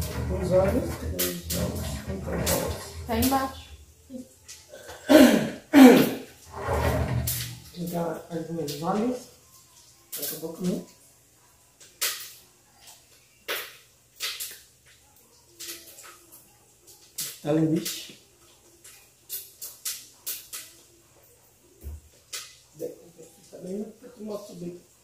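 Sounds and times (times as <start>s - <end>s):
bacon frying with pops: 7.7s - 25.0s.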